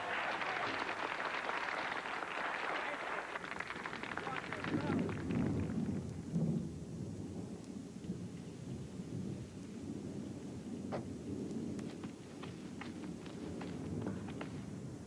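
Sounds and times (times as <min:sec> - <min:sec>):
steady rain: 0:00.0 - 0:15.0
low thunder rumbling: 0:04.5 - 0:15.0.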